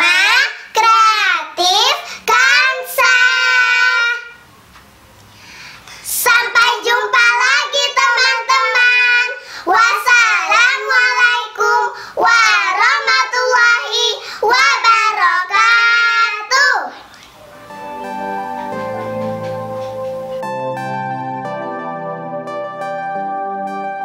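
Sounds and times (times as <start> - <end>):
girls singing together: 2.2 - 4.4, 6.1 - 16.5
soft instrumental music: 17.3 - 24.0.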